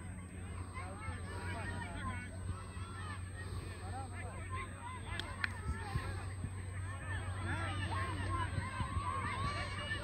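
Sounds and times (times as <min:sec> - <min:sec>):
distant calls and shouts: 0:00.0 - 0:10.0.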